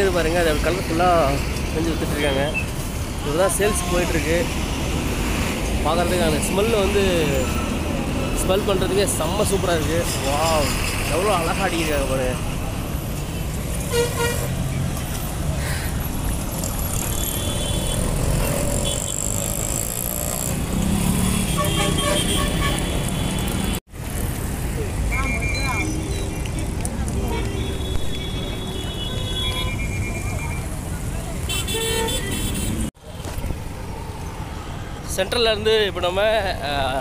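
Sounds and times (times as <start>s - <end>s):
street traffic: 0.0s - 37.0s
voices of passers-by: 0.0s - 37.0s
car and bus horn toots: 13.9s - 14.5s, 21.3s - 23.4s, 31.5s - 32.8s.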